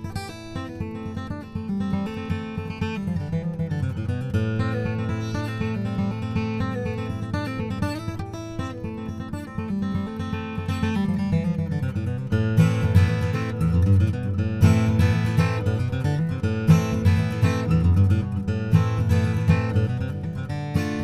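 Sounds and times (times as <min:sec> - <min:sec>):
acoustic guitar fingerstyle: 0:00.0 - 0:21.0.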